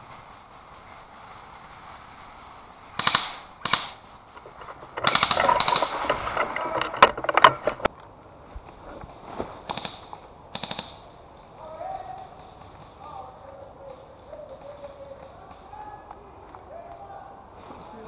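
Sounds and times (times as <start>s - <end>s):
single sharp gun cracks: 3.0s - 4.1s
airsoft rifle bursts: 3.0s - 7.9s.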